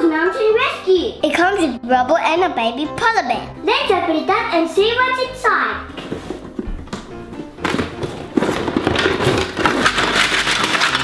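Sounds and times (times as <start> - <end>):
packaging rustling and crackling: 7.6 - 11.0.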